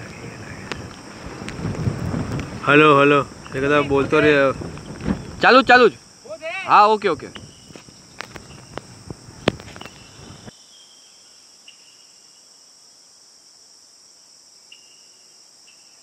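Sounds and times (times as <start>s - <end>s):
low rustling: 0.0s - 6.1s
crickets chirping: 0.0s - 16.0s.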